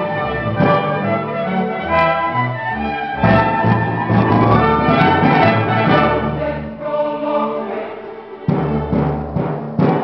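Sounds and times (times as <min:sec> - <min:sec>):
baroque string ensemble: 0:00.0 - 0:09.2.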